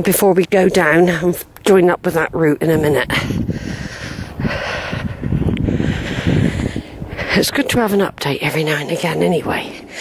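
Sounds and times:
steady wind hiss: 0.0s - 10.0s
wind buffeting microphone: 0.0s - 10.0s.

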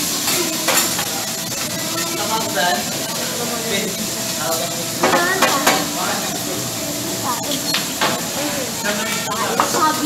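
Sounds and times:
meat sizzling on a steel griddle: 0.0s - 10.0s.

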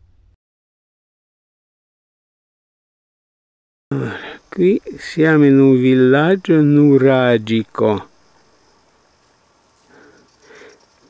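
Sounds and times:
open air hiss: 3.9s - 11.0s.

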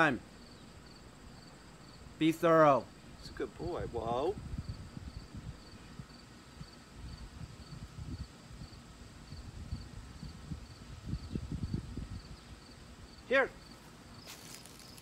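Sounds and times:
insects chirping: 0.0s - 15.0s.

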